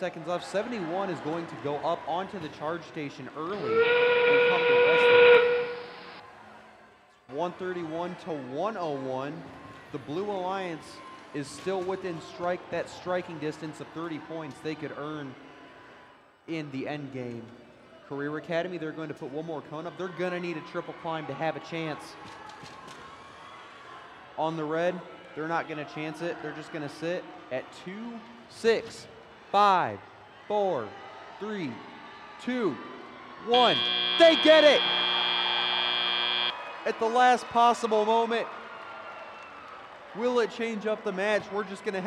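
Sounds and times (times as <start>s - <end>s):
low arena background noise: 0.0s - 42.0s
steam whistle: 3.6s - 6.2s, 33.5s - 36.6s.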